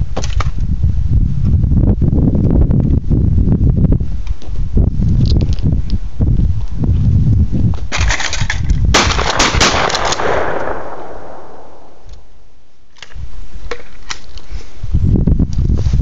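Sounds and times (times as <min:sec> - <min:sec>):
wind rumble on microphone: 0:00.0 - 0:16.0
gunshots: 0:08.9 - 0:12.1
gunshot echo: 0:09.0 - 0:12.1.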